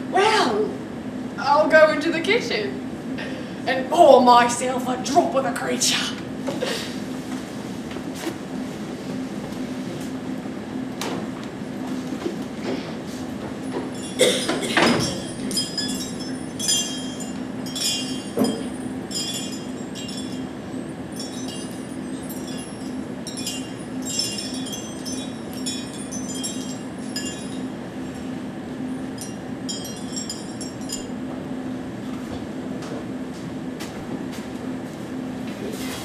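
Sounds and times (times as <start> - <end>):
low electrical hum: 0.0 - 36.0
glass clinking: 13.7 - 28.3, 29.0 - 31.2.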